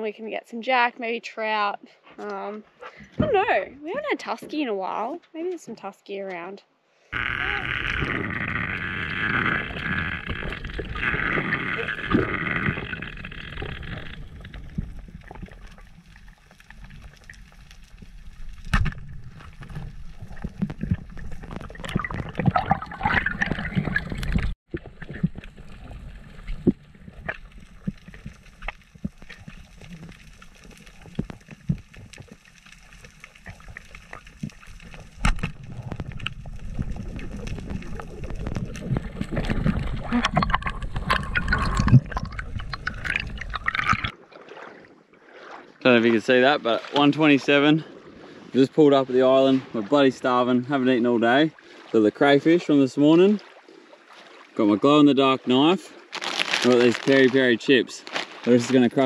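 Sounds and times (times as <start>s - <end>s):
low underwater rumble: 7.2s - 45.0s
water gurgling underwater: 7.2s - 45.6s.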